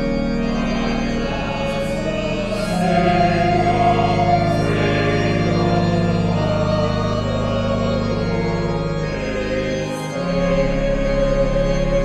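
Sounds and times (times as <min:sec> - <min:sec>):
choir singing a hymn: 0:00.0 - 0:12.0
organ chords: 0:00.0 - 0:12.0.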